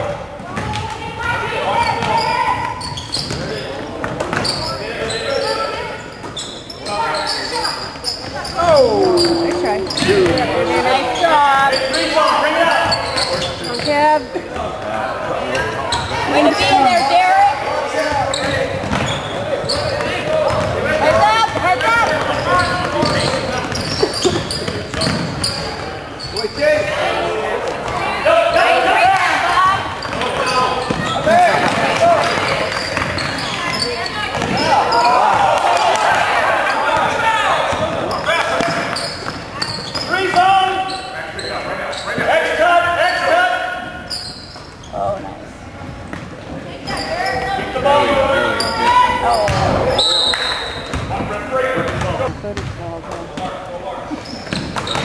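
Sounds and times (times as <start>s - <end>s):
basketball bouncing on court: 0.4s - 1.0s, 1.9s - 4.6s, 21.5s - 25.7s, 49.5s - 49.8s, 51.8s - 53.5s
sneakers squeaking: 0.4s - 28.9s, 29.5s - 35.5s, 36.1s - 42.5s, 43.9s - 55.0s
people calling out: 8.3s - 14.2s.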